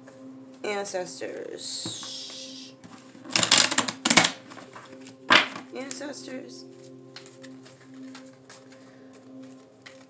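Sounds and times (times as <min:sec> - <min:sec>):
cards being shuffled: 0:01.8 - 0:06.0, 0:06.7 - 0:10.0.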